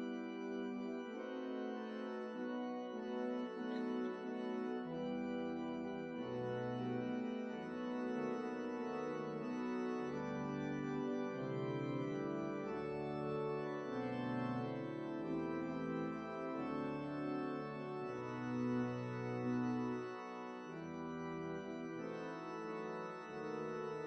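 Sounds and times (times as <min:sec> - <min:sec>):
organ playing slow chords: 0:00.0 - 0:24.0.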